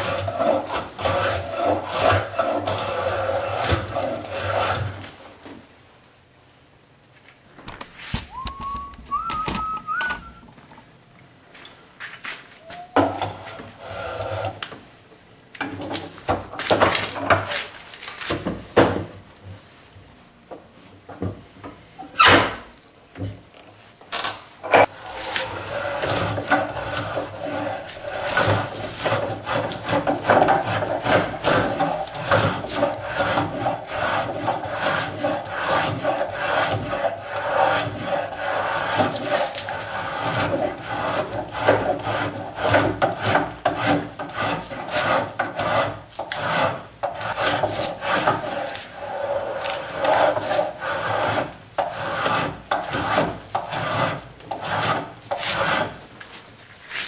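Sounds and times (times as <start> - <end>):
spokeshave shaving wood: 0.0 - 5.2, 24.8 - 57.0.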